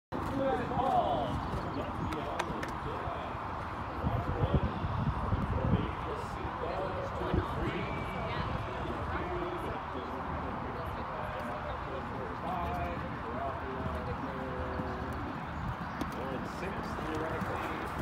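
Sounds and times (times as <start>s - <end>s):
people talking indistinctly: 0.2s - 18.0s.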